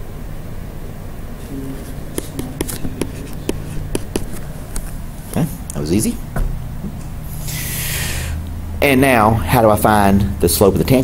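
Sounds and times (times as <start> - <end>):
stylus tapping and scratching tablet: 1.5 - 5.8.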